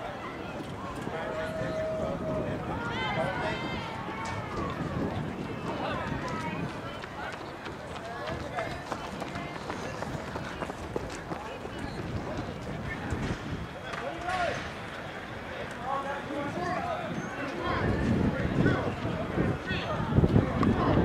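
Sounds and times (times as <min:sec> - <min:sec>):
indistinct chatter of voices: 0:00.0 - 0:21.0.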